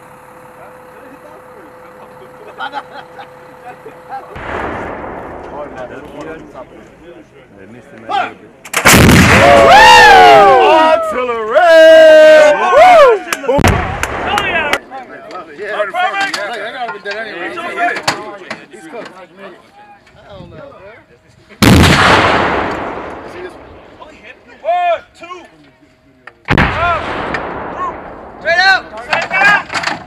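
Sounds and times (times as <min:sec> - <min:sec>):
artillery gun blast with echo: 0:04.4 - 0:06.7, 0:08.7 - 0:09.8, 0:13.6 - 0:14.8, 0:21.6 - 0:24.0, 0:26.5 - 0:29.0
howitzer firing boom: 0:04.4 - 0:07.2, 0:08.8 - 0:09.8, 0:13.6 - 0:14.8, 0:21.6 - 0:24.1, 0:26.5 - 0:29.3
people whooping and yelling: 0:09.3 - 0:13.6.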